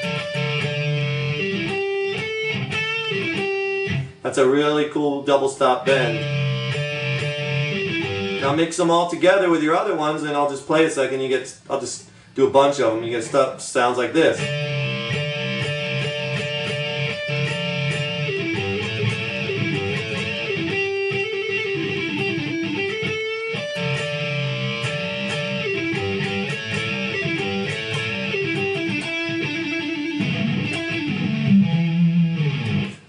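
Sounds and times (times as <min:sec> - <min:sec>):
electric guitar double-stop bends: 0:00.0 - 0:04.5, 0:05.3 - 0:09.9, 0:14.0 - 0:33.0.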